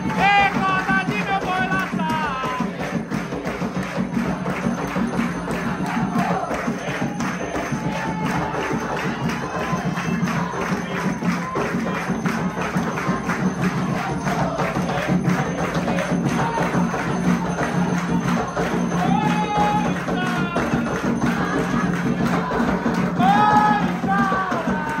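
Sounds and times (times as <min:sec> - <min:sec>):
fast percussion beat: 0:00.0 - 0:25.0
hand clapping: 0:00.0 - 0:25.0
voices singing: 0:00.0 - 0:25.0.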